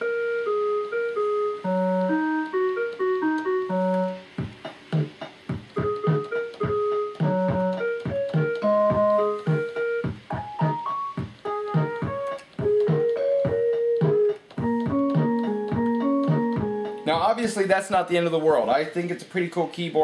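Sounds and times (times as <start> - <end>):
keyboard melody of short notes: 0.0 - 17.4
keyboard percussive beat: 0.0 - 18.0.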